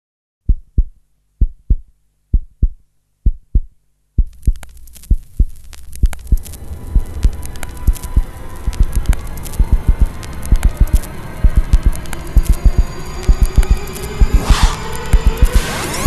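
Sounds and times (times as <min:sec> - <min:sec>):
heartbeat thumps: 0:00.4 - 0:15.6
music with driving beat: 0:07.8 - 0:16.0.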